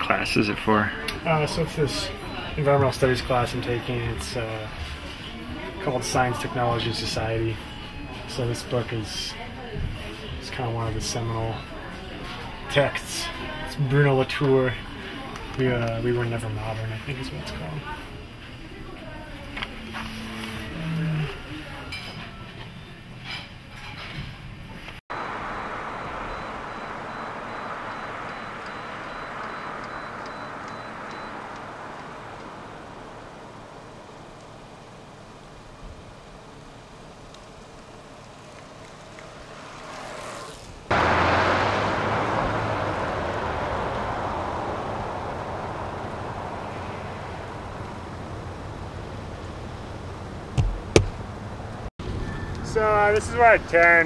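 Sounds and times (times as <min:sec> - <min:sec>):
outdoor street noise: 0:00.0 - 0:54.0
car rumble from inside cabin: 0:25.2 - 0:34.8, 0:40.5 - 0:51.9
sharp knocks: 0:50.6 - 0:51.2.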